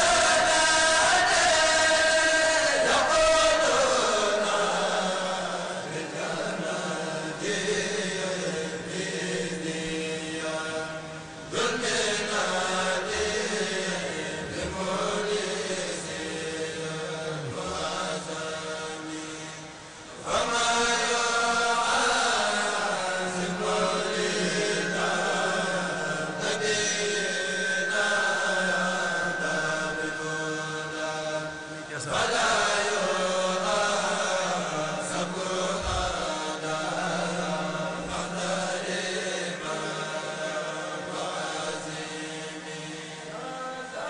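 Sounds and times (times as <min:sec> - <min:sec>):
men chanting through a pa: 0:00.0 - 0:44.0.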